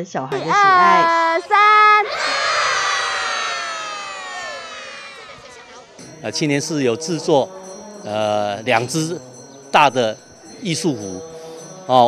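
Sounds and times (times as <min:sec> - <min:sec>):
children cheering together: 0:00.4 - 0:05.9.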